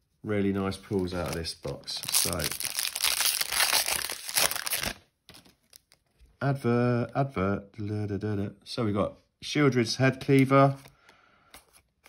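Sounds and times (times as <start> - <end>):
foil wrapper crinkling and tearing: 1.0 - 6.0.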